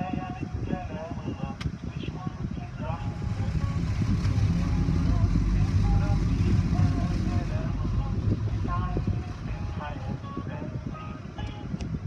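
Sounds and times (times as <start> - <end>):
car wash machinery rumble: 2.6 - 10.5.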